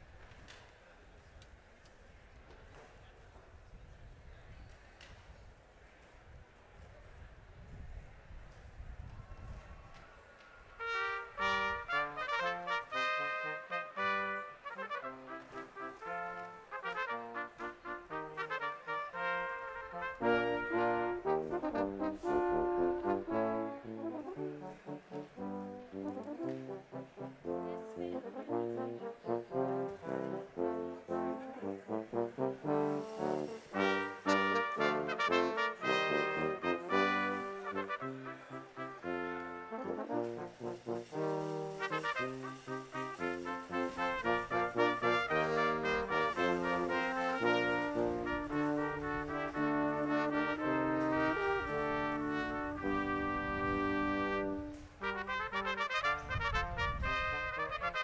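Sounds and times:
brass ensemble playing: 0:10.8 - 0:58.0.

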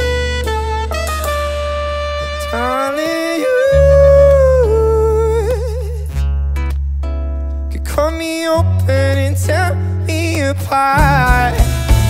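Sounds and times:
bass guitar: 0:00.0 - 0:12.0
man singing wordless line: 0:02.3 - 0:06.2, 0:07.7 - 0:11.8.

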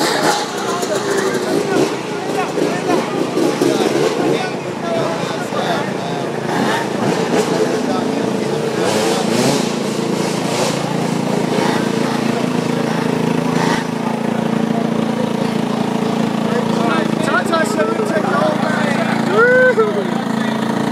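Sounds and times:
crowd shouting and chatter: 0:00.0 - 0:20.9
dirt bike engine revving: 0:00.0 - 0:20.9.

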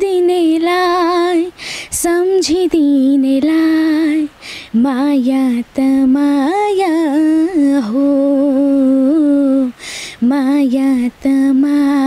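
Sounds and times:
woman singing unaccompanied: 0:00.0 - 0:12.0
breathy hiss: 0:01.4 - 0:02.1, 0:04.0 - 0:04.8, 0:08.4 - 0:10.3.

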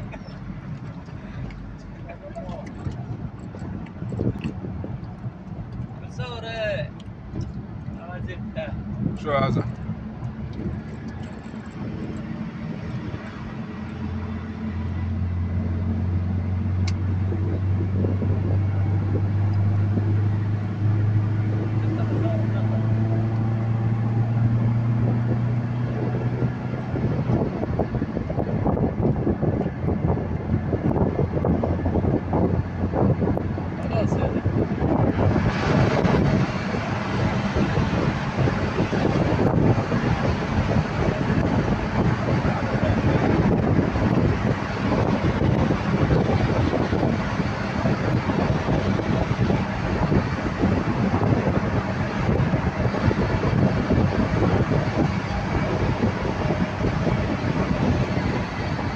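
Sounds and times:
car engine drone from inside: 0:00.0 - 0:58.9
tyre and road noise: 0:00.0 - 0:58.9.

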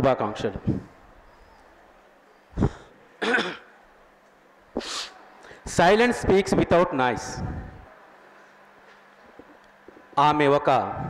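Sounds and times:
person clearing throat: 0:02.6 - 0:03.7.

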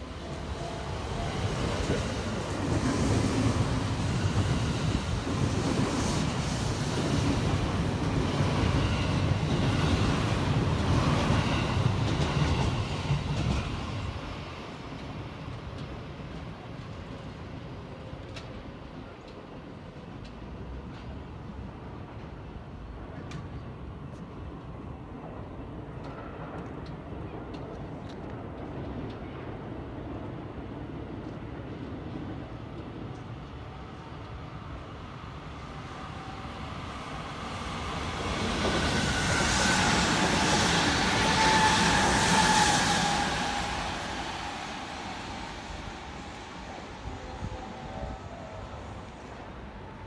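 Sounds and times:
electric train passing: 0:00.0 - 0:18.7, 0:28.8 - 0:50.0.

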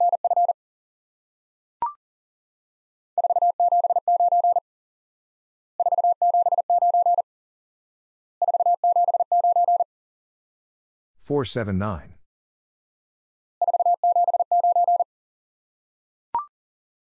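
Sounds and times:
morse code tone: 0:05.8 - 0:07.2, 0:13.6 - 0:15.0.

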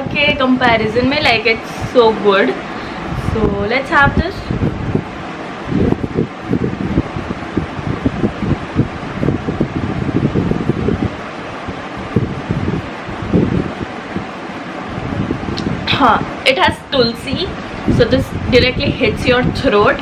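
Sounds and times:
air gusts buffeting microphone: 0:00.0 - 0:20.0
room fan rushing air: 0:00.0 - 0:20.0.

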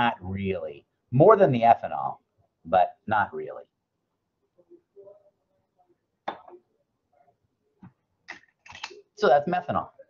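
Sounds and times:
objects clicking on a desk: 0:07.8 - 0:09.0.

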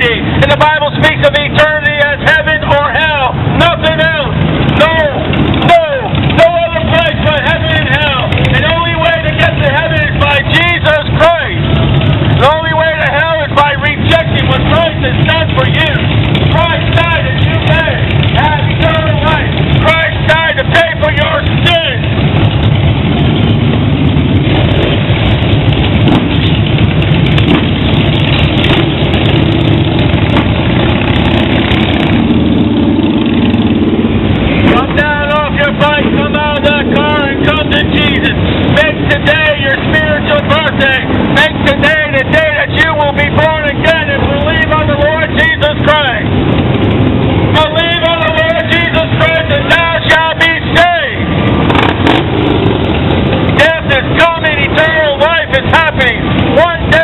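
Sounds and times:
person talking loudly: 0:00.0 - 0:11.6, 0:12.4 - 0:22.1, 0:34.5 - 0:46.3, 0:47.5 - 0:51.3, 0:53.5 - 0:57.0
motorcycle engines rumbling: 0:00.0 - 0:57.0
street traffic: 0:00.0 - 0:57.0.

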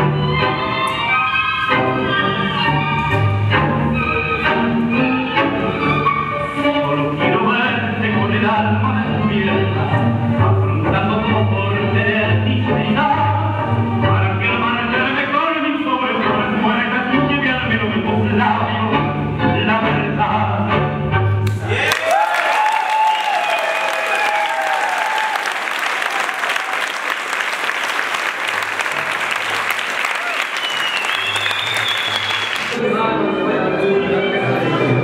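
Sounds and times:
tango music over speakers: 0:00.0 - 0:21.8, 0:27.6 - 0:35.0
crowd applauding: 0:21.4 - 0:32.8.

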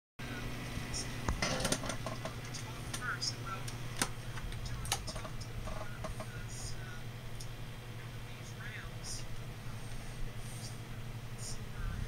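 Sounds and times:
steady low hum: 0:00.2 - 0:12.0.

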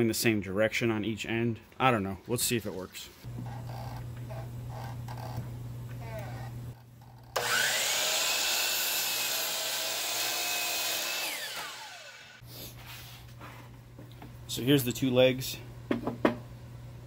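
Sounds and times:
miter saw cutting wood: 0:07.4 - 0:12.4.

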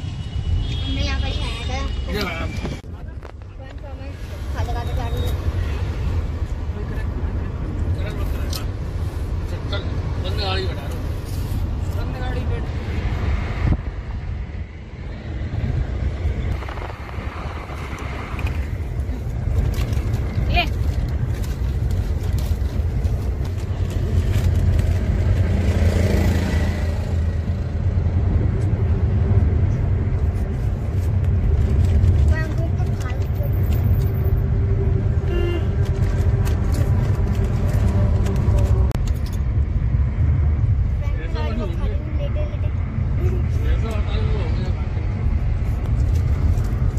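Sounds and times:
car road and engine rumble: 0:00.0 - 0:46.9.

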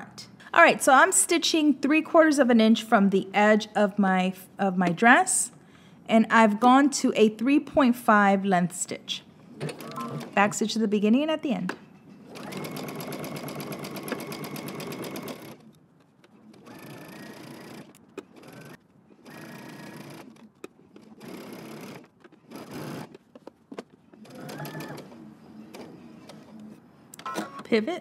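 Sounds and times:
sewing machine stitching: 0:12.3 - 0:15.6, 0:16.5 - 0:20.4, 0:21.0 - 0:23.2, 0:24.2 - 0:26.4.

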